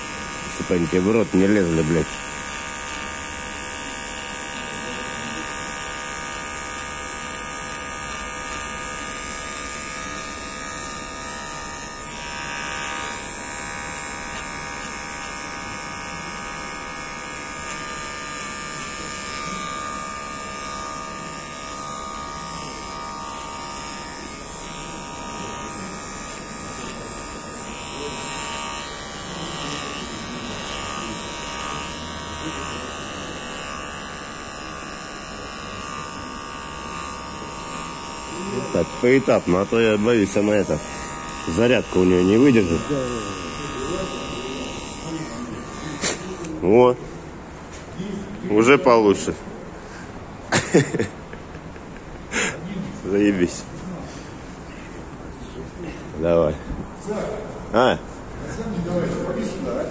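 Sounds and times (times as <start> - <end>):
electric hair trimmer buzzing: 0.0 - 46.8.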